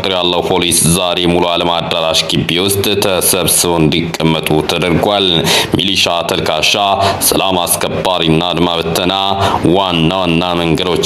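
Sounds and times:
person narrating: 0.0s - 11.0s.

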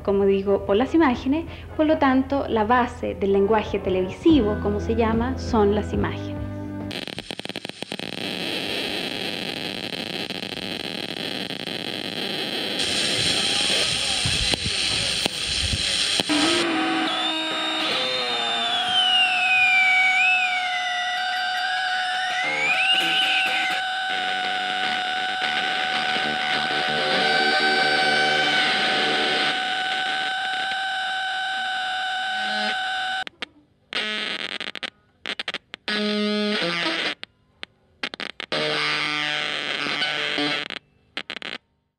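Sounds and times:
electronic soundtrack music: 16.2s - 30.8s.

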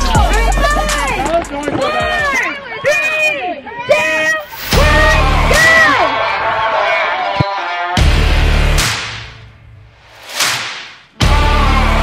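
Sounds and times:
music: 0.0s - 2.3s, 4.6s - 6.2s, 7.5s - 12.0s.

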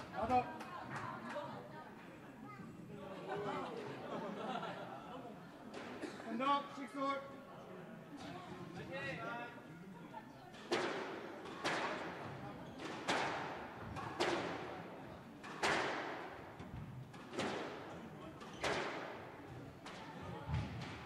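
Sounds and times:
squash ball struck by rackets: 10.7s - 12.2s, 12.8s - 17.9s, 18.6s - 19.2s.

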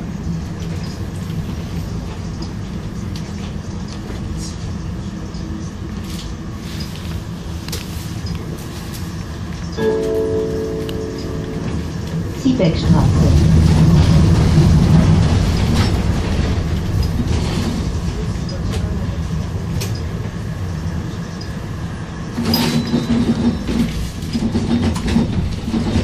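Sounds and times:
tram motor hum: 0.0s - 26.0s
tram wheels rumbling on rails: 0.0s - 26.0s
high motor tone: 9.8s - 12.5s
clicks from the track: 22.4s - 26.0s.

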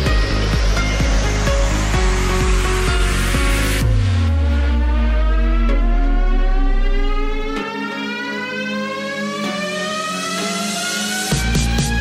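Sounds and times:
deep bass notes: 0.0s - 7.8s
rising synth sweep: 0.0s - 12.0s.

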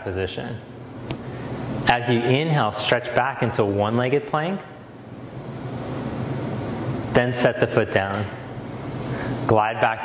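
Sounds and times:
breath into microphone: 9.0s - 9.5s.

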